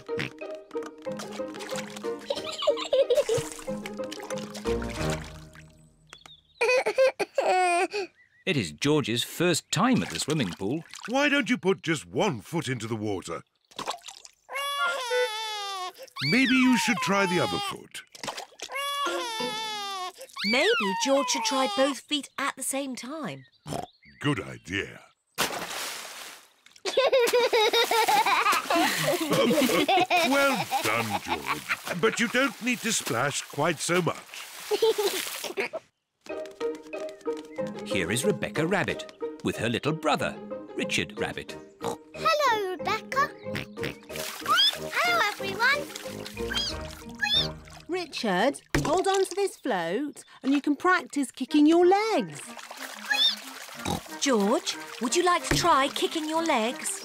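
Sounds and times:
cartoon background music: 0:00.0 - 0:06.0, 0:16.2 - 0:17.8, 0:18.8 - 0:22.0, 0:36.3 - 0:49.3, 0:50.5 - 0:57.0
child giggling: 0:02.3 - 0:03.5, 0:06.6 - 0:08.1, 0:14.6 - 0:16.3, 0:19.0 - 0:21.9, 0:26.8 - 0:31.8, 0:34.7 - 0:35.8
cartoon water splash: 0:44.1 - 0:47.9, 0:52.5 - 0:56.2.

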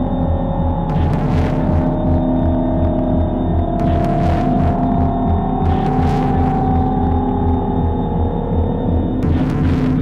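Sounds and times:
droning electronic noise music: 0:00.0 - 0:10.0
low throbbing pulse: 0:00.0 - 0:10.0.

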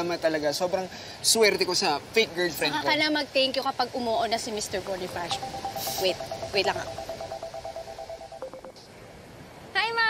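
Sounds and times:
phone ringtone trilling: 0:05.1 - 0:08.8
short low beep: 0:05.3 - 0:08.8.

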